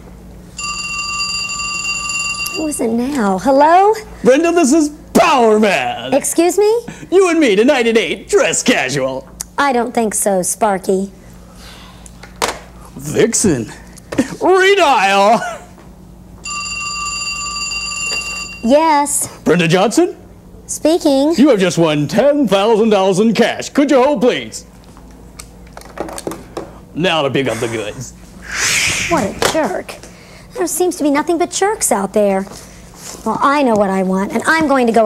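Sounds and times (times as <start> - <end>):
telephone ringing: 0.6 - 3.0, 16.4 - 18.8.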